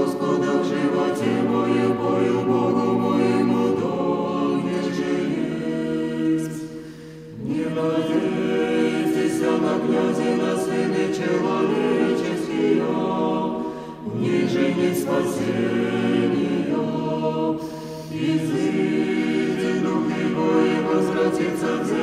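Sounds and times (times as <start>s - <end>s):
choir singing a cappella chant: 0.0s - 22.0s.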